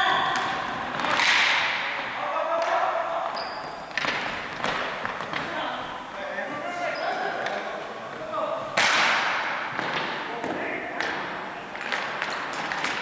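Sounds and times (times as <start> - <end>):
sticks and ball knocking on floor: 3.9 - 5.6, 8.8 - 13.0.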